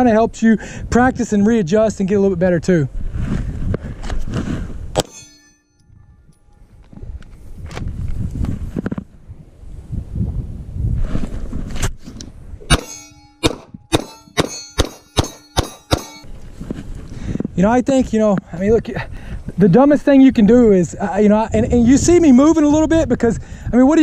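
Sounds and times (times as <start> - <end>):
steel plate ringing: 5.0 - 6.0, 12.7 - 16.3
pistol shots: 12.7 - 16.2.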